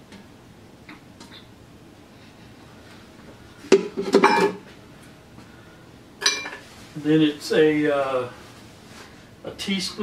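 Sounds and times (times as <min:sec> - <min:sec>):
kitchenware clinking on mixing bowl: 0:03.7 - 0:04.6.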